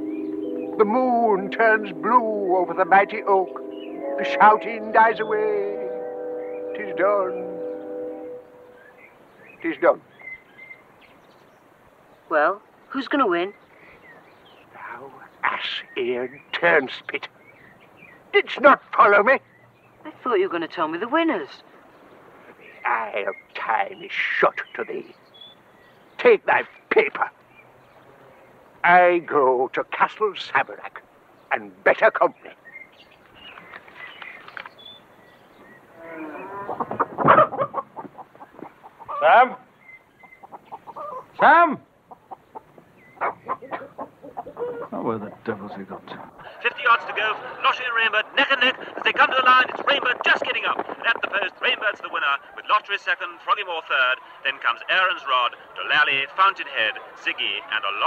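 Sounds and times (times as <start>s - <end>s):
faint bird chirps: 5.1s - 18.4s, 32.3s - 41.4s
chickens clucking and cackling: 35.8s - 47.7s.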